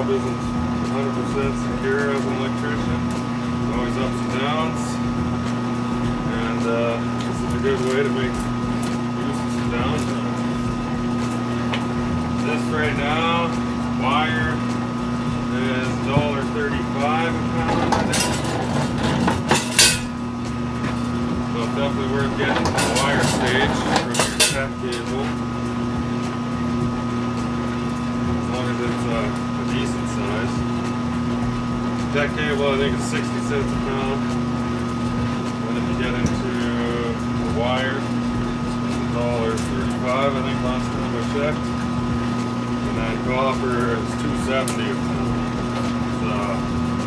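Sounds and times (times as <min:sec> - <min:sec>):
electric motor hum: 0:00.0 - 0:47.0.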